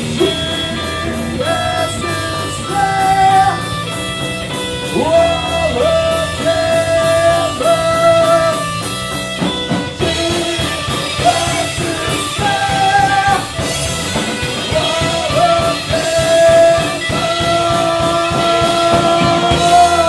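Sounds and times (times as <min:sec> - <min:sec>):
bass guitar: 0:00.0 - 0:20.0
drum kit with cymbals: 0:00.0 - 0:20.0
electric guitar: 0:00.0 - 0:20.0
singer holding sliding notes: 0:00.0 - 0:20.0.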